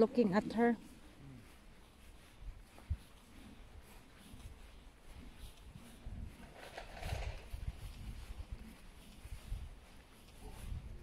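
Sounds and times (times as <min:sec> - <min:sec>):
footsteps on grass: 0:00.0 - 0:11.0.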